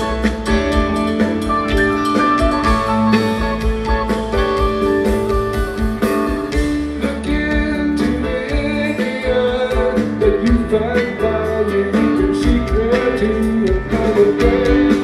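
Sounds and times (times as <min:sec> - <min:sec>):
drum kit: 0:00.0 - 0:15.0
electric bass: 0:00.0 - 0:15.0
electric guitars: 0:00.0 - 0:15.0.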